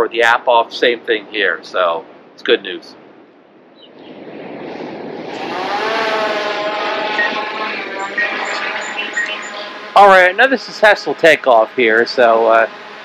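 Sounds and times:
drone propellers buzzing: 3.9s - 13.0s.

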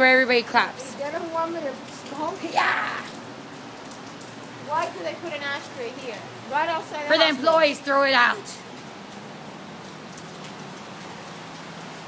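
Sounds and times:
outdoor background hiss: 0.0s - 12.0s.

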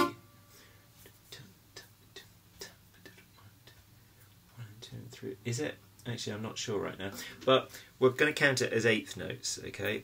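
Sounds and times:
acoustic guitar note: 0.0s - 0.4s.

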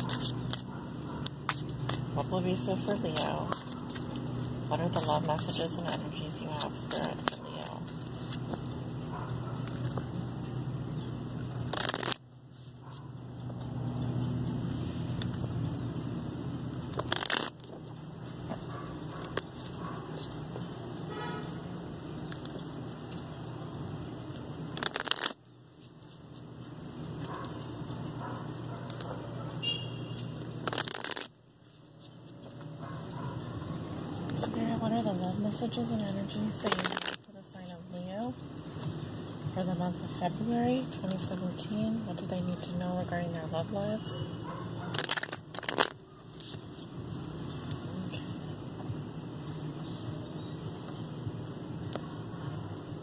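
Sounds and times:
cards being shuffled: 0.0s - 2.2s, 3.1s - 8.8s, 11.3s - 13.0s, 16.9s - 20.7s, 22.2s - 22.7s, 24.3s - 28.1s, 30.4s - 32.8s, 36.6s - 37.8s, 44.9s - 48.0s.

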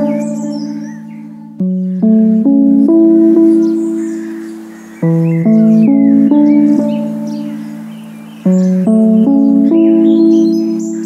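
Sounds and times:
slow instrumental relaxation music: 0.0s - 11.0s.

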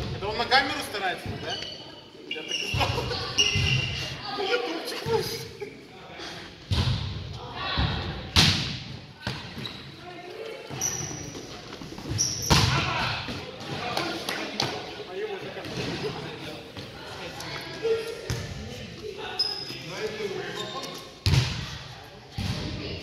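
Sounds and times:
players' voices: 0.0s - 23.0s
volleyball slaps echoing: 6.7s - 9.6s, 12.4s - 14.8s, 21.2s - 22.8s.

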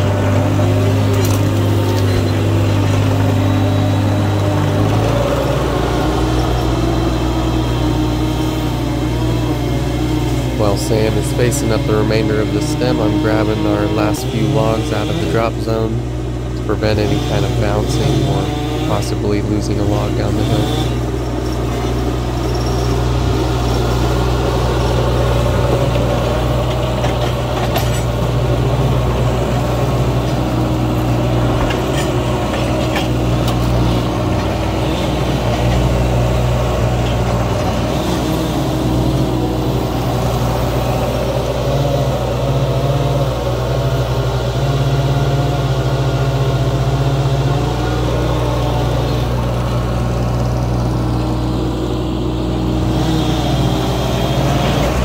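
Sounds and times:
skid steer engine running: 0.0s - 55.0s.

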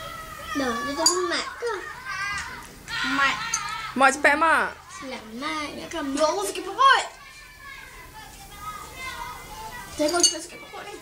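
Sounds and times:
chatter of children and adults: 0.0s - 11.0s.

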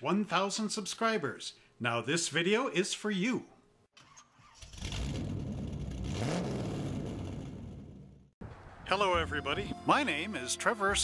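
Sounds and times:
car engine starting and revving: 4.1s - 8.3s.

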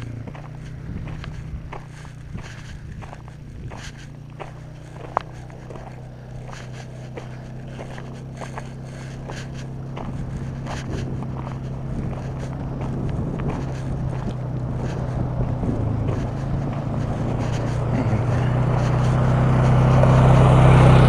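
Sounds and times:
footsteps on loose gravel: 0.0s - 20.3s
utility vehicle engine running: 0.0s - 21.0s.

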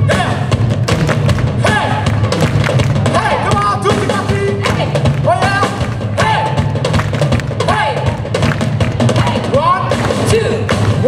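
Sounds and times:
live blues band playing: 0.0s - 11.0s.

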